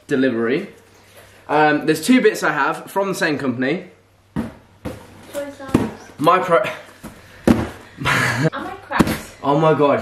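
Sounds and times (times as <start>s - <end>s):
cardboard parcel thumps: 4.4s - 6.0s, 7.0s - 7.9s, 8.9s - 9.3s.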